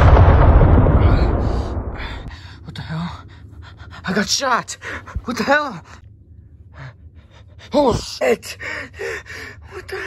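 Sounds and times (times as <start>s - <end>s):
cinematic boom with hiss: 0.0s - 2.3s.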